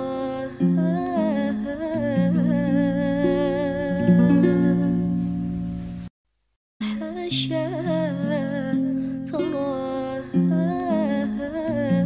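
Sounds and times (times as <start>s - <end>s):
person singing ornamented melody: 0.0s - 5.2s, 6.8s - 12.0s.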